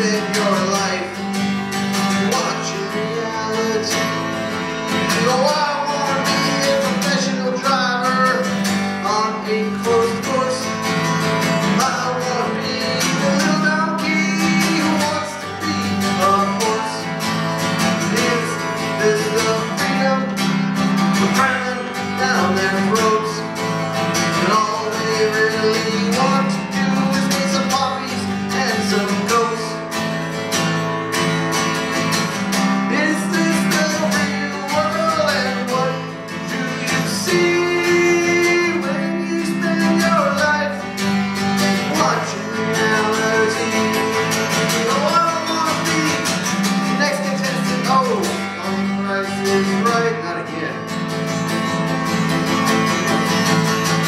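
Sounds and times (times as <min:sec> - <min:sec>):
man singing: 0:00.0 - 0:30.0, 0:31.8 - 0:51.7
acoustic guitar strumming: 0:00.0 - 0:54.0.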